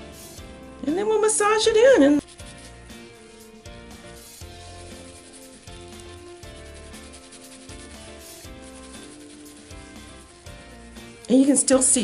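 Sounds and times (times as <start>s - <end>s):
background music with steady beat: 0.0s - 12.0s
gloved fingers rubbing wet scalp: 1.8s - 11.2s.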